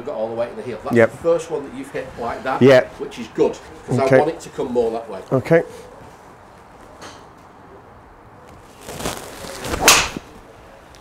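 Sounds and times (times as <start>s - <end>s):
golf club swish: 9.3s - 10.3s
clubhead striking golf ball: 9.7s - 10.3s.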